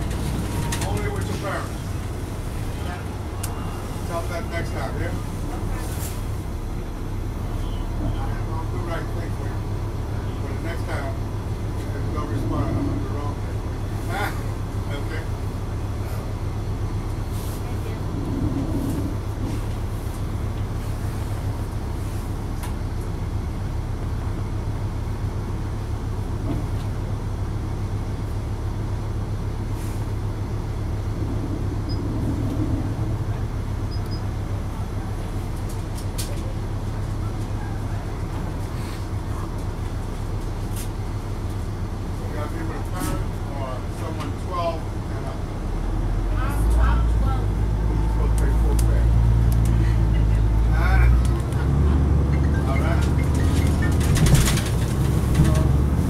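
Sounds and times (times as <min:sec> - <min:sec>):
diesel engine idling: 0:00.0 - 0:56.0
clicks and rattles: 0:53.0 - 0:55.8.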